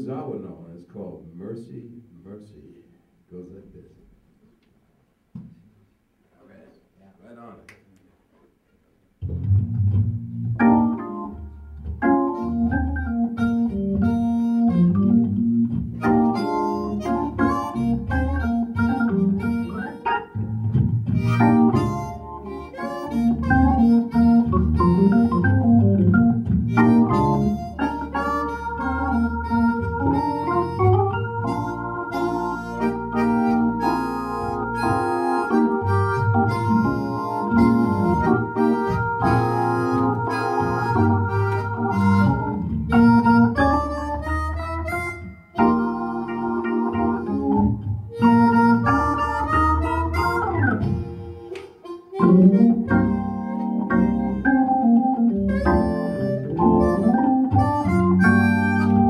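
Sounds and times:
organ playing bluesy tune: 9.4 - 59.0
harmonica playing: 10.6 - 20.6, 21.2 - 59.0.

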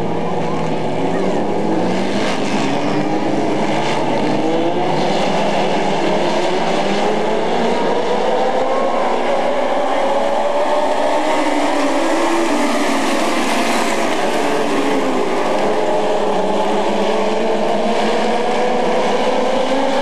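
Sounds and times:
race car engines accelerating: 0.0 - 20.0.

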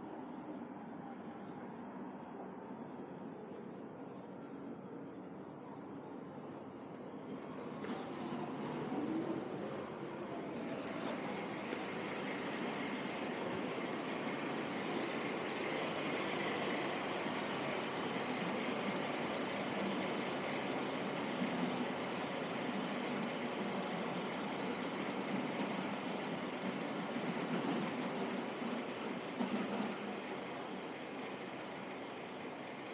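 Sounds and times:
city traffic: 0.0 - 32.9
urban hum: 0.0 - 32.9.

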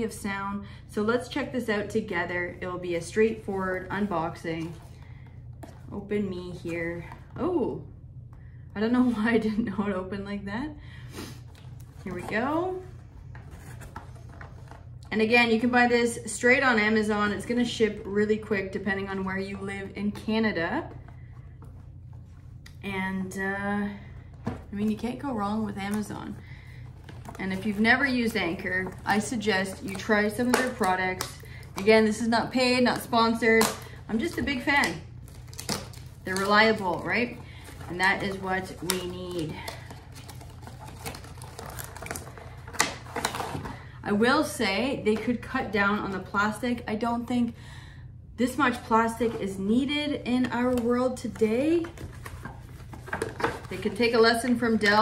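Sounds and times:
low background hum: 0.0 - 55.0
cardboard and plastic packaging handled: 11.5 - 15.1, 24.3 - 44.0, 50.6 - 55.0.

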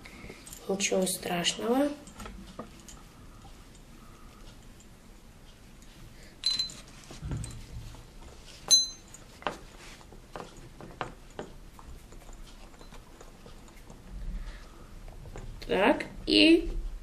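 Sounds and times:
metallic clinks: 5.8 - 8.0, 8.6 - 9.4
light clicks and knocks: 5.8 - 15.8
dull thump: 7.2 - 7.9.

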